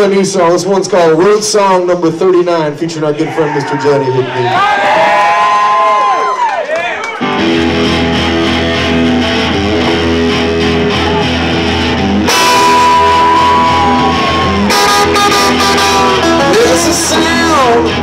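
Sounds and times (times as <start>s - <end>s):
live rock band playing: 7.2s - 18.0s
lead guitar bending high note: 7.3s - 18.0s.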